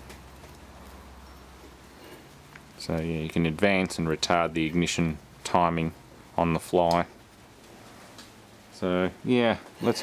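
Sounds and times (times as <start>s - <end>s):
low hum and faint hiss: 0.0s - 10.0s.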